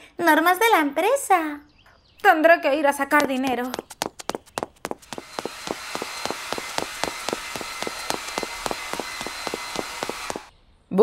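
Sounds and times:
high-heel footsteps on hard floor: 0:03.1 - 0:10.5.

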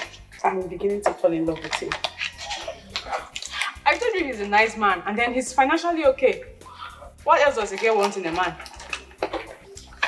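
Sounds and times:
plastic wrapper crinkling: 0:07.5 - 0:10.0.

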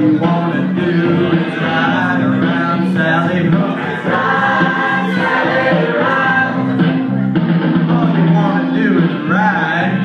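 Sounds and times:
person singing: 0:00.0 - 0:07.2.

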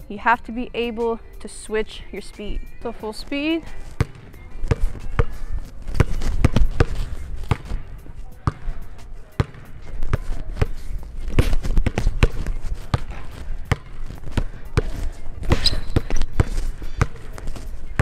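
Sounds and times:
basketball bouncing on wooden floor: 0:04.0 - 0:07.8, 0:09.4 - 0:10.7, 0:11.4 - 0:17.3.

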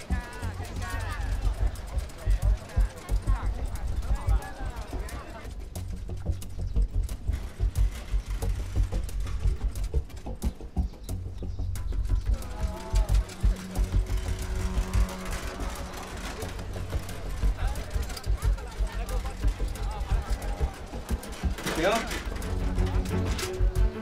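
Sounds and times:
indistinct voices: 0:00.0 - 0:24.0
low irregular drum beats: 0:00.0 - 0:24.0.

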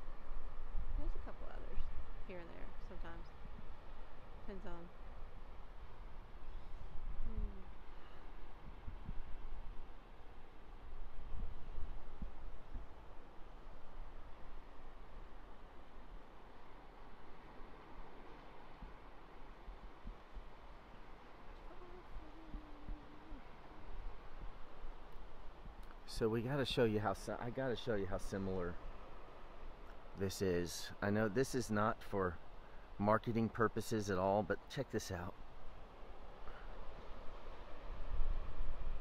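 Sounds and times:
ocean surf washing on beach: 0:00.0 - 0:39.0.

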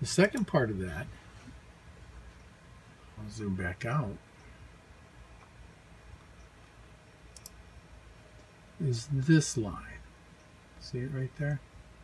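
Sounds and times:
low room hum: 0:00.0 - 0:12.0
computer mouse clicks: 0:07.3 - 0:07.6.

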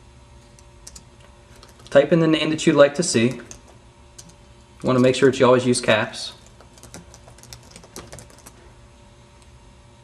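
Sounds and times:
faint steady hum: 0:00.0 - 0:10.0
keyboard typing: 0:00.8 - 0:02.0, 0:03.2 - 0:05.2, 0:06.4 - 0:08.6.

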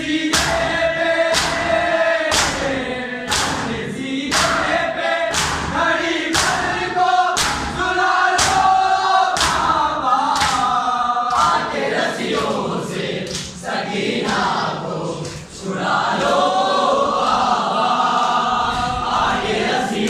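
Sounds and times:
group of voices chanting: 0:00.0 - 0:20.0.

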